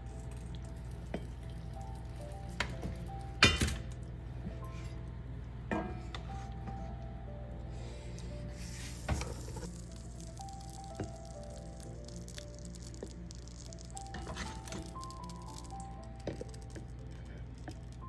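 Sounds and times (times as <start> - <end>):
soft background music: 0.0 - 18.0.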